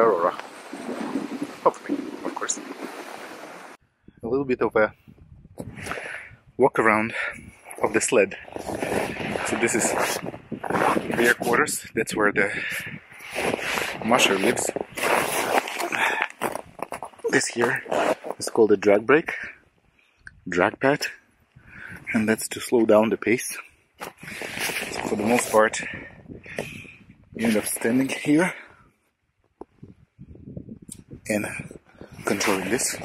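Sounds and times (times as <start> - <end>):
hand rustling and scraping on rubber: 7.6 - 11.7, 13.2 - 18.5, 24.0 - 25.9, 27.4 - 28.4, 32.2 - 33.0
boots crunching in snow: 13.3 - 18.4.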